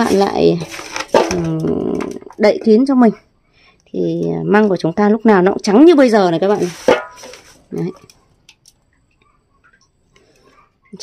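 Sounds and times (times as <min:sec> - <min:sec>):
bamboo shoots crackling in glass jar: 0:00.0 - 0:02.9, 0:06.4 - 0:08.9.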